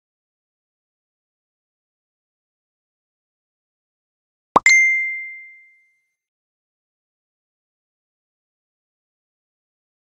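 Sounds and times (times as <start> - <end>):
notification ding: 4.6 - 5.7.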